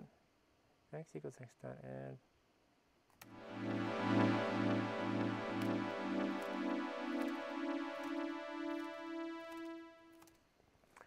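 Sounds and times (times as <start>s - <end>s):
sawtooth synth chord: 3.2s - 10.2s.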